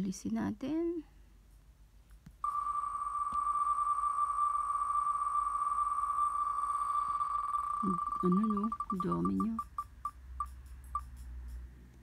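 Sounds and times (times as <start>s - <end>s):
spinning wheel ticks: 7.3s - 11.7s.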